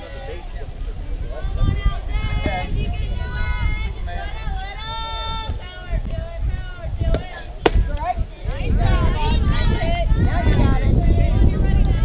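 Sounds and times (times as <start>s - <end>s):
softball popping into mitt: 7.1s - 8.0s.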